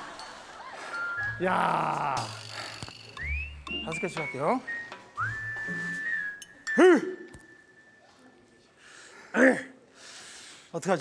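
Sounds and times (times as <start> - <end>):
whistle-like sliding tone: 3.1 - 8.1.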